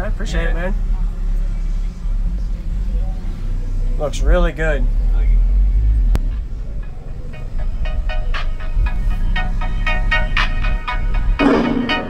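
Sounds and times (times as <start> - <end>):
music through car audio system: 0.0 - 4.0, 5.0 - 12.0
heavy deep bass: 0.0 - 12.0.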